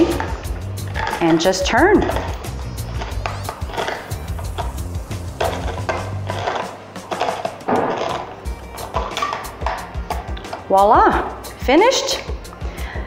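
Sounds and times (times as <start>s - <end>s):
can opener clicking around can: 0.0s - 10.7s
background music: 0.0s - 13.0s.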